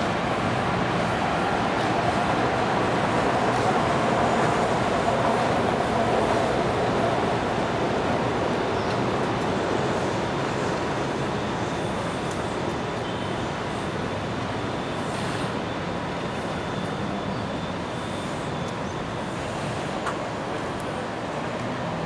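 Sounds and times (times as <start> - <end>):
city traffic hum: 0.0 - 22.0.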